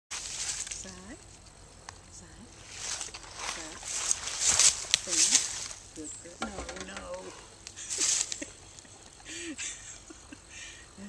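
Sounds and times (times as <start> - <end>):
hooves shuffling through dry leaves: 0.1 - 1.2, 2.5 - 8.7
person speaking: 3.4 - 4.0, 5.0 - 7.6.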